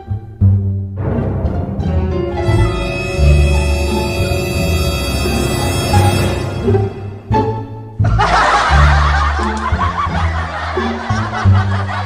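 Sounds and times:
people laughing: 8.0s - 12.0s.

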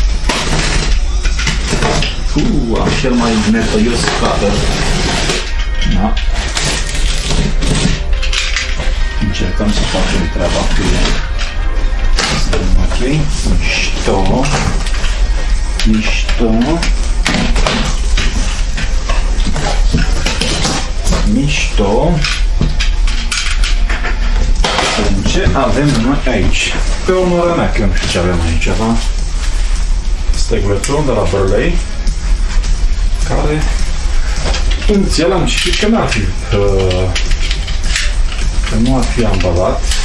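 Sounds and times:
cardboard rustling and scraping: 0.0s - 11.4s, 24.0s - 30.0s
background music: 0.0s - 40.0s
box cutter slicing cardboard: 6.4s - 8.0s.

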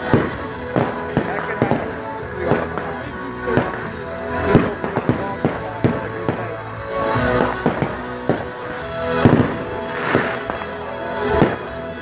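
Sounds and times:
fireworks cracking and popping: 0.0s - 12.0s
music playing: 0.0s - 12.0s.

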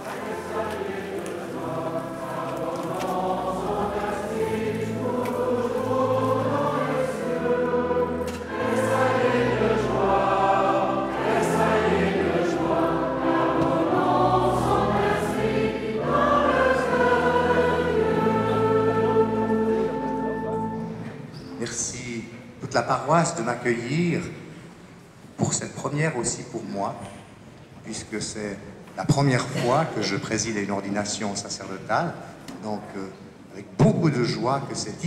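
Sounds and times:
choir singing a hymn: 0.0s - 21.8s.

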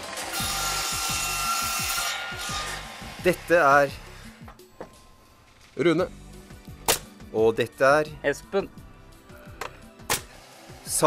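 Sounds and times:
circular saw cutting wood: 0.0s - 4.4s, 10.2s - 11.0s.

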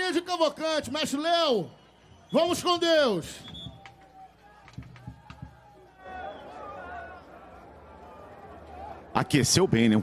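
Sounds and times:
faint crowd voices: 3.3s - 10.0s.

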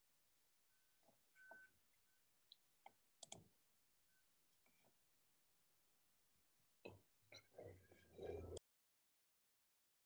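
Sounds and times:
faint clicks: 2.5s - 3.5s.

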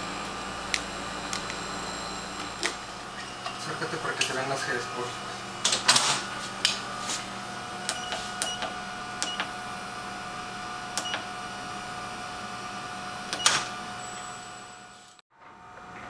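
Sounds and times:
steady hum: 0.0s - 16.0s.

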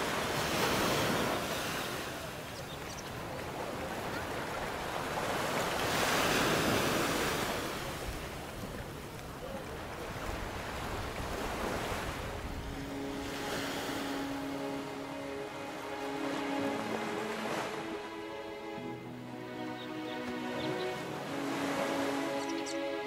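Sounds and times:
small waves washing onto beach: 0.0s - 19.5s
wind on microphone: 10.1s - 13.6s
background music with held notes: 11.7s - 23.0s.

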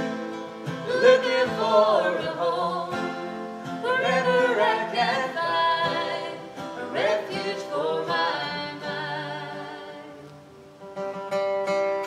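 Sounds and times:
acoustic guitars strummed: 0.0s - 12.0s
woman singing: 0.8s - 10.4s.

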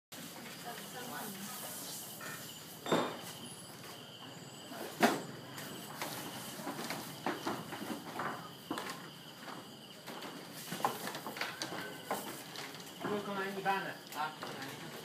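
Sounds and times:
footsteps on bamboo floor: 5.0s - 15.0s.

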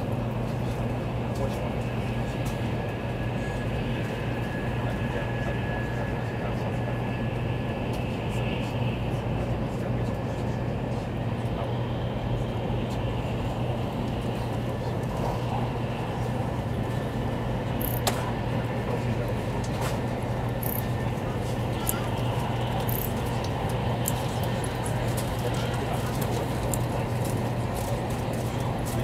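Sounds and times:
train cabin rumble: 0.0s - 29.0s
faint high whine: 1.4s - 27.2s.

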